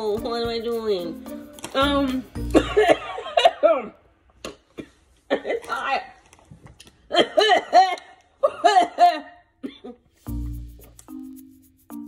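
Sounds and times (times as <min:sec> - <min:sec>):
background music: 0:00.0 - 0:03.6, 0:10.2 - 0:12.0.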